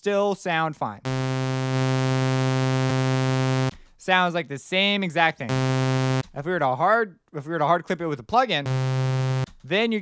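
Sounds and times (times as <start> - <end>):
low buzzy sawtooth tone: 1.1 - 3.7, 5.5 - 6.2, 8.7 - 9.5.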